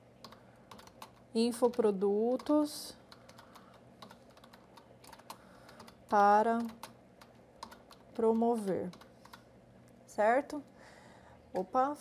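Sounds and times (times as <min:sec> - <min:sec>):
keyboard keystrokes: 0:00.2 - 0:09.4.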